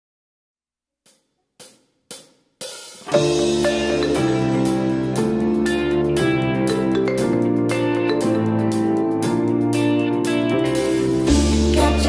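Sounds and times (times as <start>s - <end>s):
drumsticks striking hi-hat: 1.1s - 4.3s.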